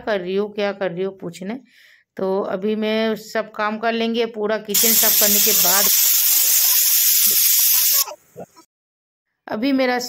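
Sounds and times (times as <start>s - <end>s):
pressure cooker steam hissing: 4.7s - 8.2s.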